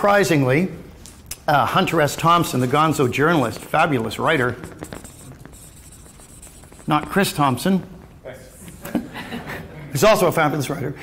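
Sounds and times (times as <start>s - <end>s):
marker pen writing on paper: 1.8s - 8.8s.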